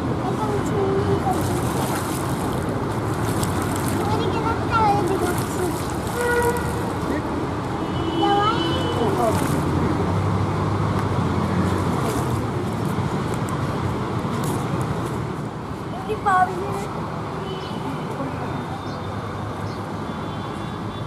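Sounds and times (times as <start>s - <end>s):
traffic noise: 0.0s - 21.0s
vehicle horn toot: 6.2s - 6.8s.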